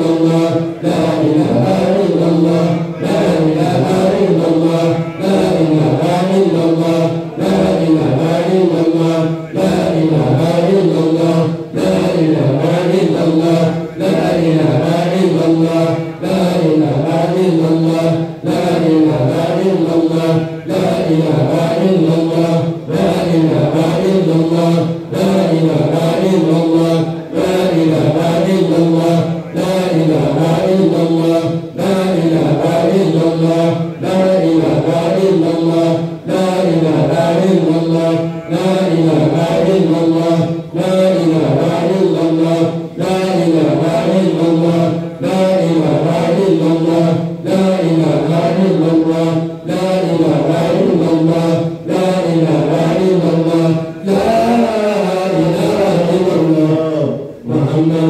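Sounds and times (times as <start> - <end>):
men chanting prayers over loudspeakers: 0.0 - 58.0.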